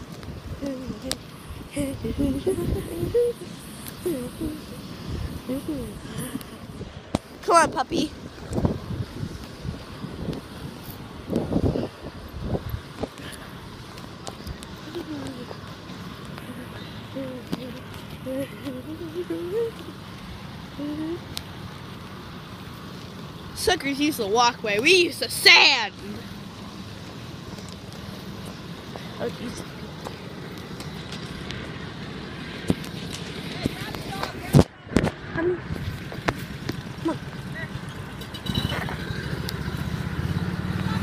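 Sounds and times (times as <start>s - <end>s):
wind buffeting microphone: 0.0s - 15.6s.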